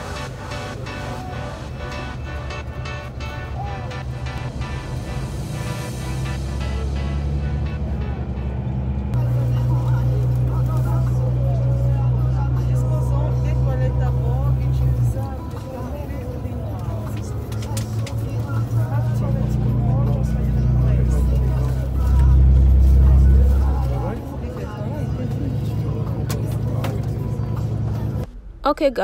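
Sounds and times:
bus engine drone: 0:00.0 - 0:29.0
indistinct voices: 0:00.0 - 0:29.0.

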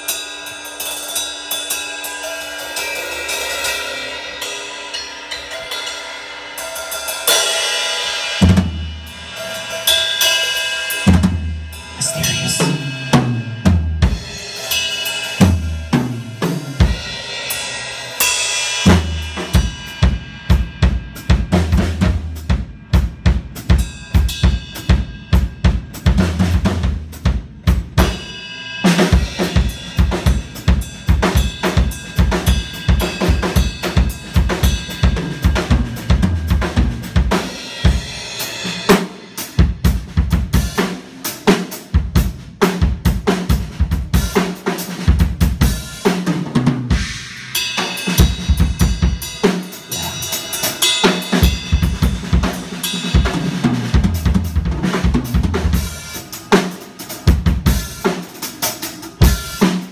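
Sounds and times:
ringing cymbals: 0:00.0 - 0:08.4, 0:09.0 - 0:20.8, 0:47.0 - 0:53.2
bass drum beat: 0:18.9 - 0:23.8, 0:29.4 - 0:38.1, 0:48.2 - 0:56.5, 0:57.2 - 0:58.0.

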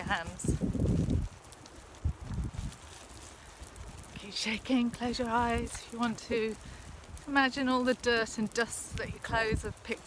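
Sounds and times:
faint outdoor hiss: 0:00.0 - 0:10.0
wind buffeting microphone: 0:00.0 - 0:10.0.

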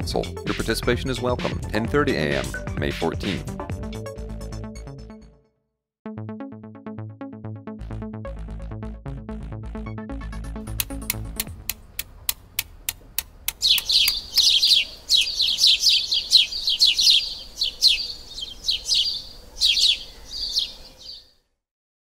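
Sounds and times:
evenly spaced ticks: 0:10.7 - 0:14.8
songbird chirping: 0:10.7 - 0:21.4.

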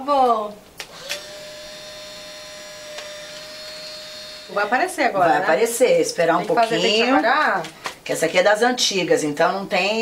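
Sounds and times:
small motor whirring: 0:00.9 - 0:05.2.

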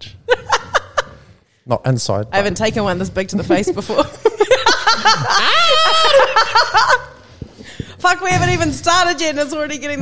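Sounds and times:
woman laughing: 0:03.9 - 0:07.2
man laughing: 0:04.2 - 0:07.2.

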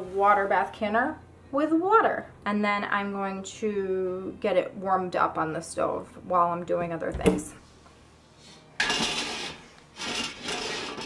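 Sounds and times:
pot scraping across metal grate: 0:08.8 - 0:11.0.

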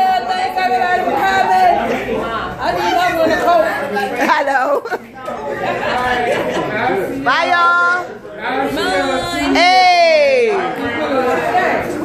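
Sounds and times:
group of adults chattering: 0:00.0 - 0:12.0.

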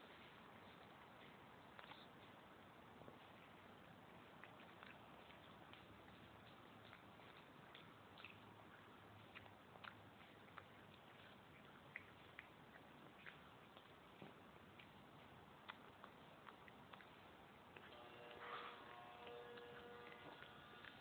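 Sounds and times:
steady low hiss: 0:00.0 - 0:21.0
cat chewing clicks: 0:04.4 - 0:18.0.

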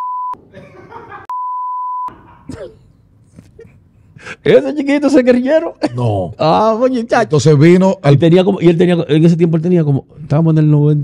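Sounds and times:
censor bleep tone: 0:00.0 - 0:00.4, 0:01.3 - 0:02.1.

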